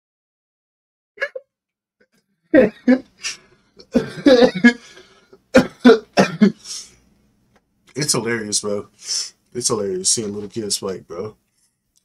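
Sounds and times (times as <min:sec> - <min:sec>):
man laughing hard: 0:02.6 - 0:03.3, 0:03.9 - 0:05.0.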